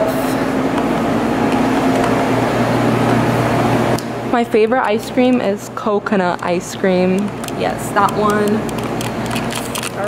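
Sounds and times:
machine hum and whir: 0.0 - 10.0.

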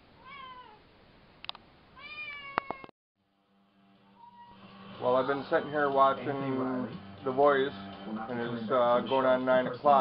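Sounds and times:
cat meowing: 0.2 - 0.8, 2.0 - 2.9, 4.1 - 4.6
faint television music: 3.8 - 10.0.

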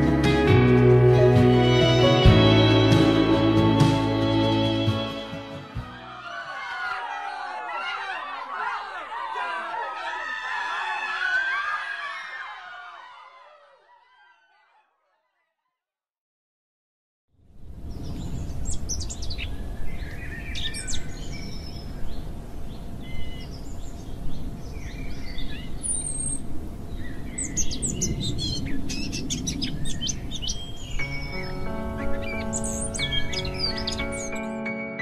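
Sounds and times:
slow ambient music: 0.0 - 6.2, 30.9 - 35.0
small birds chirping: 17.9 - 34.5.

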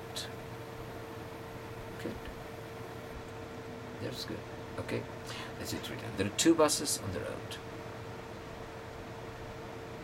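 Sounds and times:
faint constant hum: 0.0 - 10.0
room tone hiss: 0.0 - 10.0.

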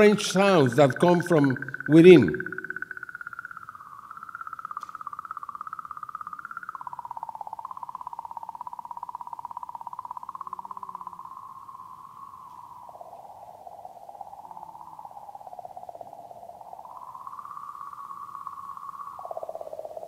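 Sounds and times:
eerie electronic warble: 0.0 - 20.0.

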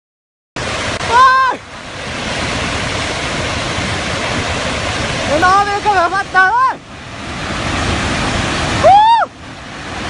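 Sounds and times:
floodwater rushing: 0.6 - 10.0.

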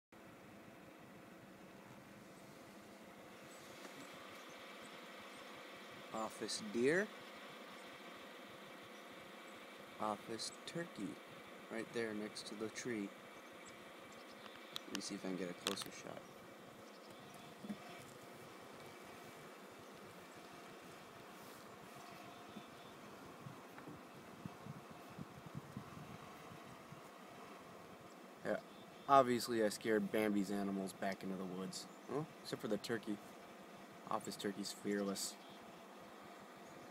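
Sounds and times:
faint background hiss: 0.2 - 36.9
faint steady low hum: 0.2 - 36.9.

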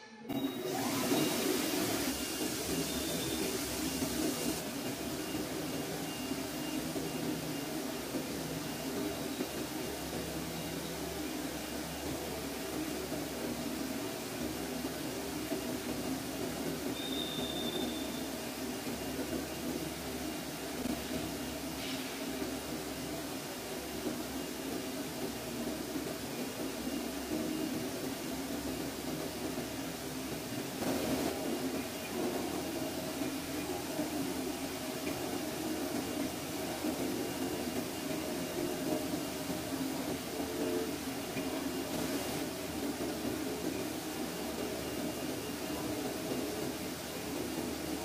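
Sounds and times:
cutting plotter machine rushing: 0.3 - 22.6.

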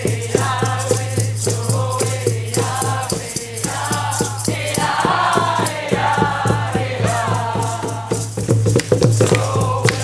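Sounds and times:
group singing a chant: 0.0 - 10.0
hand drum beat: 0.0 - 10.0
shaken rattles: 0.0 - 10.0.

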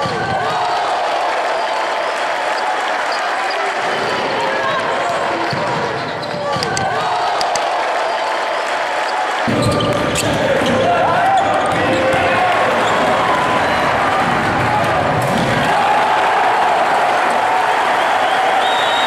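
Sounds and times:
crowd hubbub: 0.0 - 19.0.

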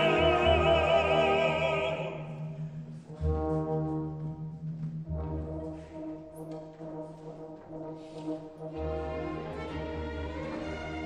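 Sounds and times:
orchestra playing held chords: 0.0 - 2.6.

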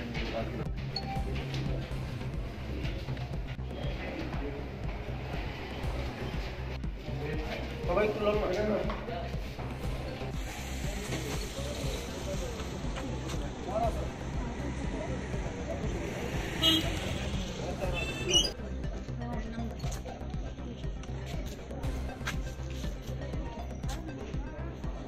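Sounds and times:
murmur of voices: 0.0 - 25.0
vehicle horn: 16.5 - 18.4.

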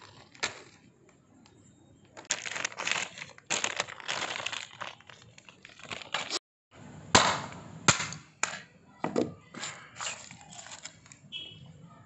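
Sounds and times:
dry crunching and crackling: 2.2 - 6.4.

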